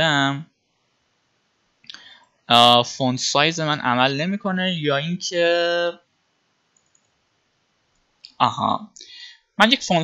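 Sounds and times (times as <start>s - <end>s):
computer mouse clicks: 6.7s - 7.2s.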